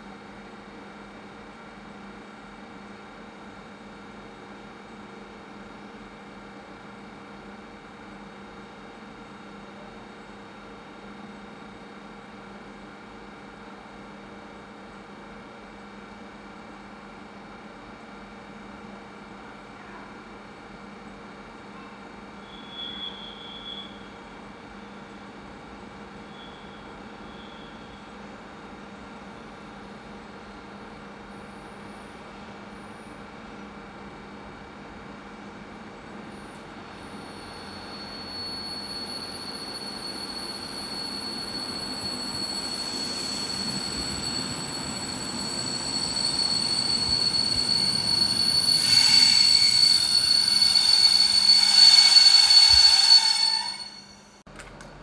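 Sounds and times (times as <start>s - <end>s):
train brakes squealing: 21.8s - 25.2s, 26.0s - 28.5s, 31.2s - 33.2s, 36.3s - 54.4s.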